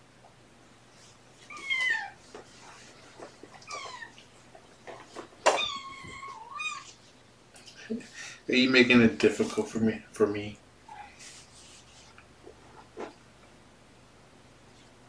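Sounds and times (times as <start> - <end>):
kitten meowing: 1.5 - 2.2, 5.5 - 7.0.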